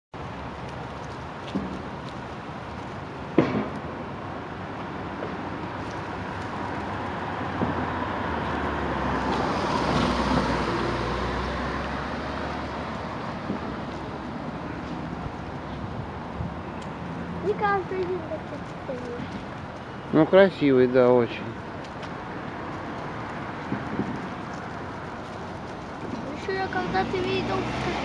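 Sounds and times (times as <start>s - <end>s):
traffic hum: 0.1s - 28.0s
vehicle passing: 4.3s - 28.0s.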